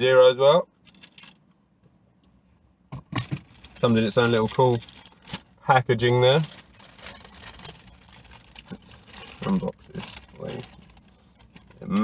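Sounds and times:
cup and straw clicks and rustles: 3.1s - 5.5s, 6.2s - 12.0s.

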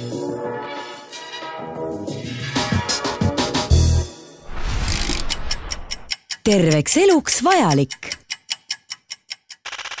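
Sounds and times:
ticking sound effect: 4.8s - 10.0s.

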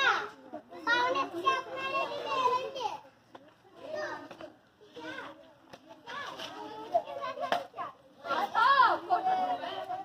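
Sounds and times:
children playing: 0.0s - 10.0s.

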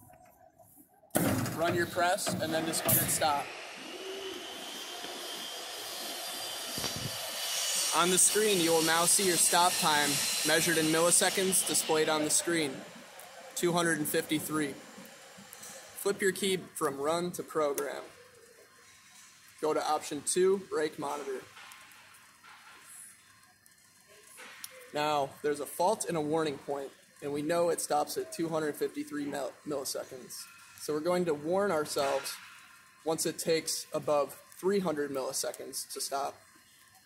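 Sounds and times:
punch press motor whirring: 2.4s - 7.8s.

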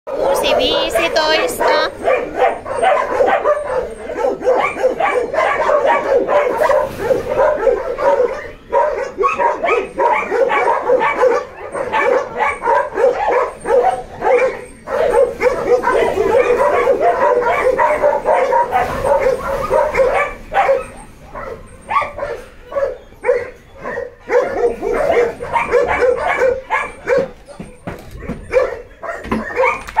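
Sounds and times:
many dogs barking: 0.1s - 30.0s.

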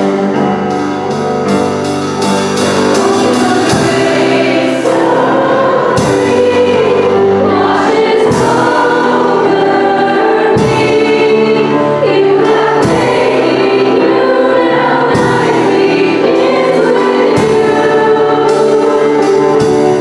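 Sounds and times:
musical accompaniment: 0.0s - 20.0s
young women singing: 2.7s - 19.6s.

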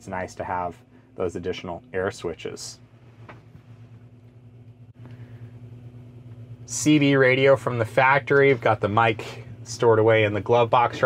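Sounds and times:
low hum inside truck cab: 0.0s - 11.0s.

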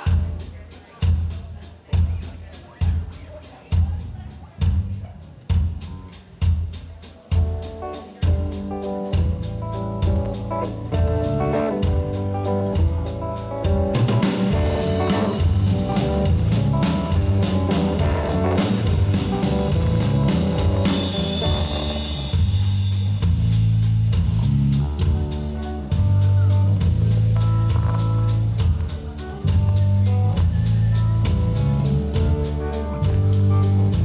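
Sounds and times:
bass guitar: 0.0s - 34.0s
drum kit: 0.0s - 34.0s
electric guitar: 7.6s - 22.9s.

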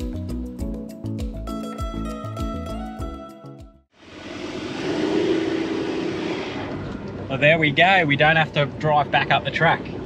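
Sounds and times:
vehicle engine hum: 4.0s - 10.0s.

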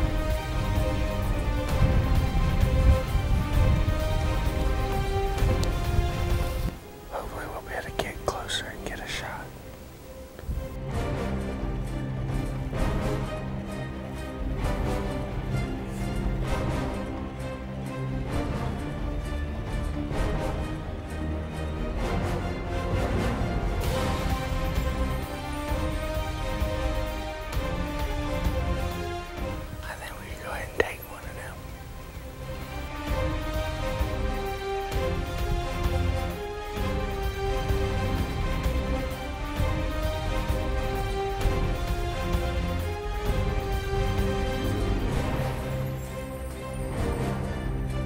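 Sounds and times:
man whispering: 7.0s - 9.6s, 29.7s - 31.9s.

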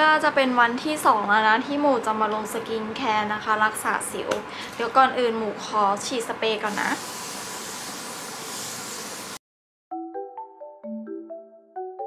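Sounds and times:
aerosol spray can hissing: 6.7s - 9.4s.

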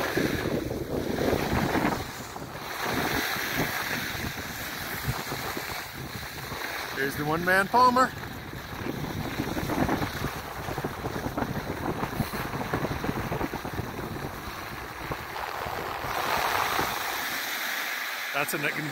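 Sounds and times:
wind buffeting microphone: 0.0s - 17.6s
skis hissing over snow: 0.0s - 18.9s.

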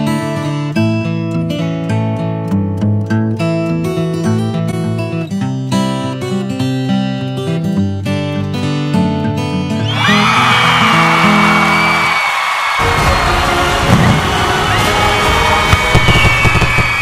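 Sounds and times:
acoustic guitar music: 0.0s - 12.0s, 12.8s - 15.9s
high firework whistles: 9.9s - 17.0s
fireworks bangs and crackling: 12.8s - 17.0s.

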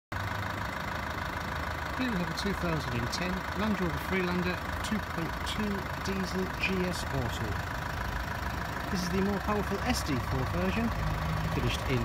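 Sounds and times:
diesel engine idling: 0.1s - 12.0s.

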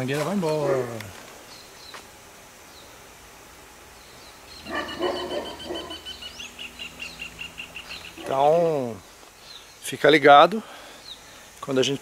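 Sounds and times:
animal calling with pulsing high note: 4.6s - 8.4s.

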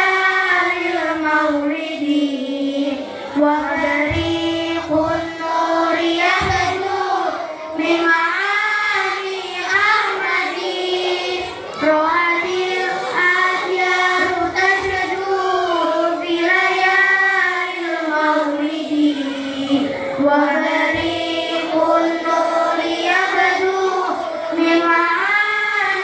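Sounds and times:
girl singing devotional song: 0.0s - 26.0s.

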